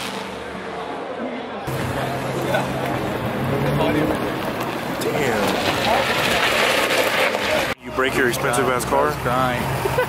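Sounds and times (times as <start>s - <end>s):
crowd voices: 0.0s - 10.0s
outdoor noise: 0.0s - 10.0s
car engine idling: 1.7s - 6.8s.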